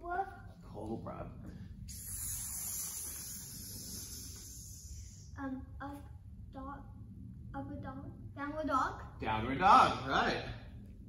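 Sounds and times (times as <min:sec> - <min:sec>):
hissing exhale through teeth: 0:01.9 - 0:05.2.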